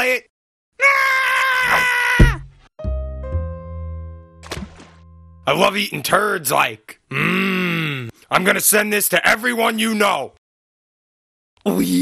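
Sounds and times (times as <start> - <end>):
thud: 2.2 - 2.7.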